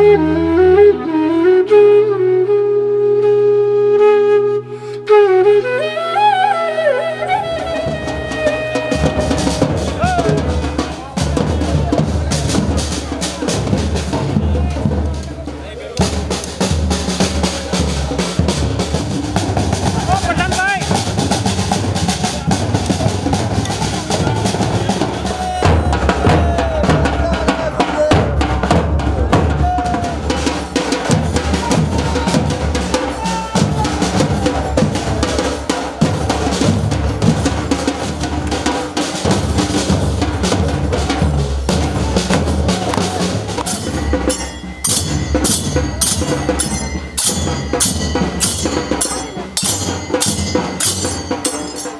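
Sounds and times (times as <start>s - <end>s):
drums and percussion beating: 5.2s - 51.9s
voices calling out: 6.9s - 13.5s, 19.5s - 36.7s, 41.6s - 51.9s.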